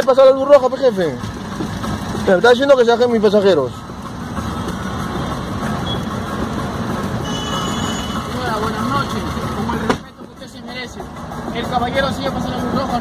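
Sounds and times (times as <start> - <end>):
street traffic: 0.0 - 13.0.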